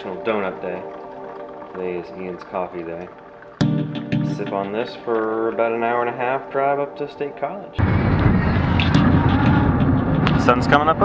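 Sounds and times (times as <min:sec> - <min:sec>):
car road and engine rumble: 0:07.8 - 0:11.0.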